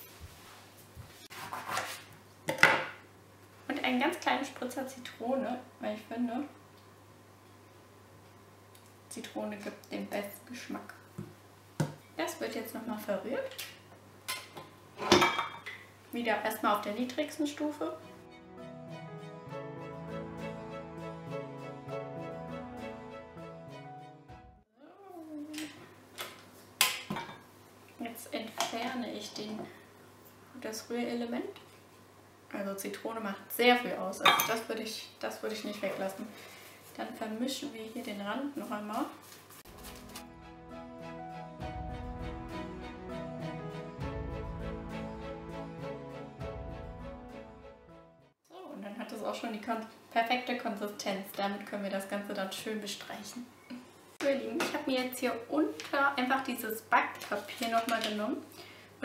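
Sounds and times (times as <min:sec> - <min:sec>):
background music: 0:17.7 - 0:24.7, 0:39.7 - 0:48.4.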